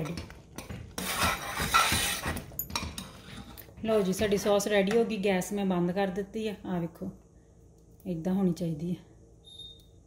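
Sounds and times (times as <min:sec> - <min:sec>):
metal spoon scraping a pot: 0:00.9 - 0:04.5.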